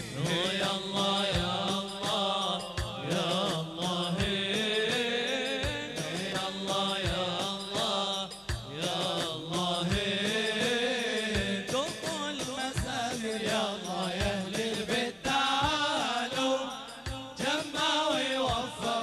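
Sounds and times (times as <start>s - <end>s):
chanted song: 0.0s - 19.0s.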